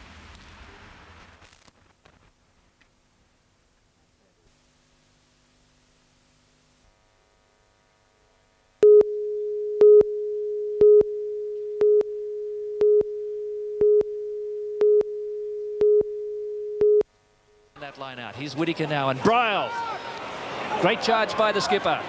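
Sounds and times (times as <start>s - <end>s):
loud beeps: 8.8s - 17.0s
steady test tone: 8.8s - 17.8s.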